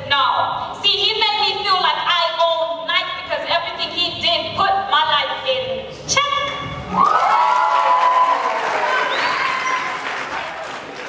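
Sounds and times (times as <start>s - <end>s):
long held cheer: 6.9s - 11.0s
audience applause: 7.0s - 11.0s.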